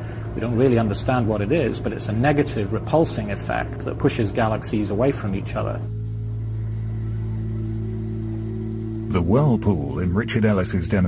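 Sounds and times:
low hum of held tones: 0.0 - 11.0.

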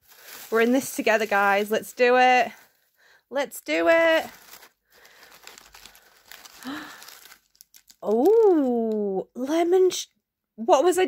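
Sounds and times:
paper and wrapper rustling: 0.0 - 3.0, 3.7 - 9.0.

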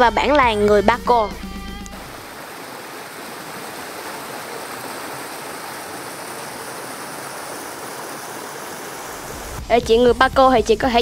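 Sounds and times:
stream rushing over stones: 1.9 - 9.7.

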